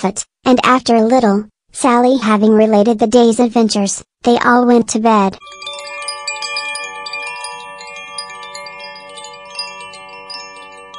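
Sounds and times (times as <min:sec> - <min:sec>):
chimes ringing: 0:05.4 - 0:10.9.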